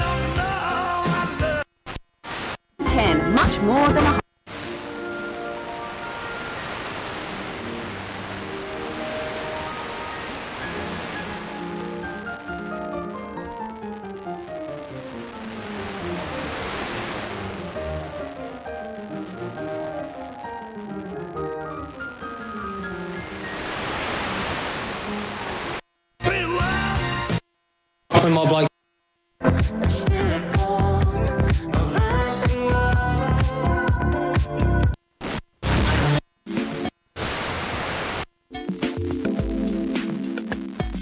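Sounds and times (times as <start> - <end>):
music on radio: 0.0 - 27.4, 29.4 - 41.0
static hiss: 0.1 - 29.5, 34.9 - 41.0.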